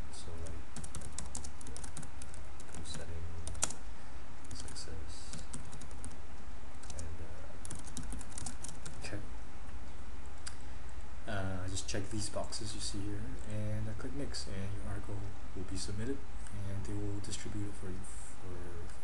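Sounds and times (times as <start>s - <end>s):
steady low hum: 0.0s - 19.0s
typing on computer keyboard: 0.8s - 3.8s, 4.5s - 6.2s, 6.8s - 7.0s, 7.6s - 9.0s.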